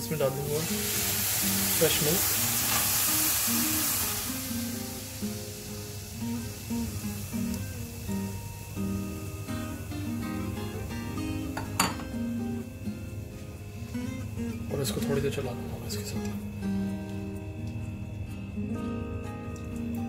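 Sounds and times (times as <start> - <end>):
milk sizzling in a pan: 0.0 - 20.0
plucked acoustic guitar music: 0.0 - 20.0.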